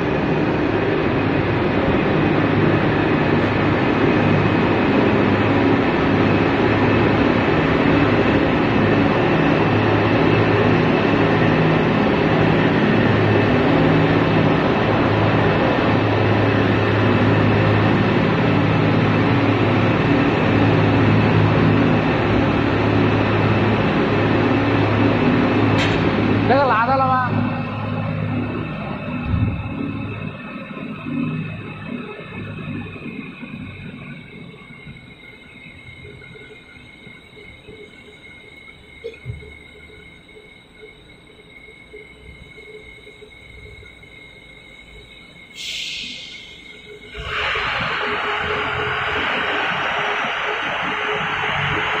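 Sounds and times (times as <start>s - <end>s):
machinery hum and whine: 0.0s - 52.0s
loud rushing hiss: 45.5s - 52.0s
low rumble: 46.9s - 52.0s.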